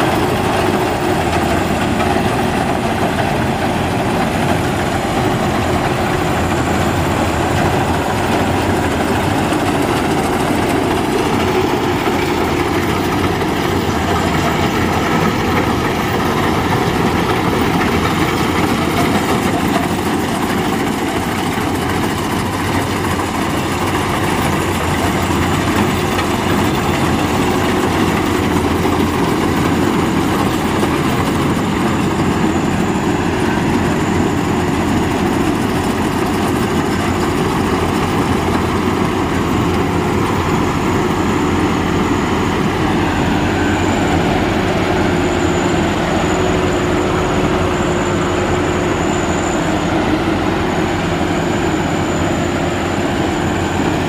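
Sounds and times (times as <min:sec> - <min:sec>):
combine harvester running: 0:00.0 - 0:54.0.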